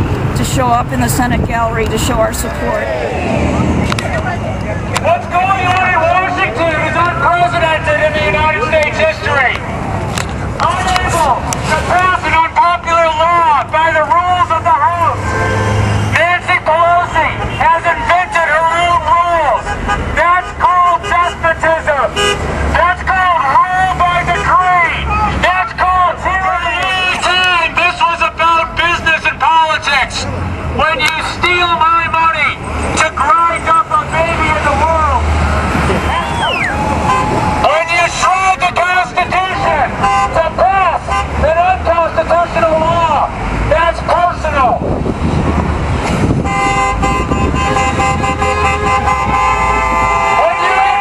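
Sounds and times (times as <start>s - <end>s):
street traffic: 0.0s - 51.0s
vehicle engine hum: 0.0s - 51.0s
man shouting through a megaphone: 5.0s - 9.6s, 10.6s - 15.4s, 16.1s - 35.3s, 36.0s - 44.9s, 49.9s - 51.0s
car horn: 15.1s - 22.5s, 24.1s - 25.3s, 36.0s - 38.4s, 39.6s - 41.6s, 46.4s - 51.0s.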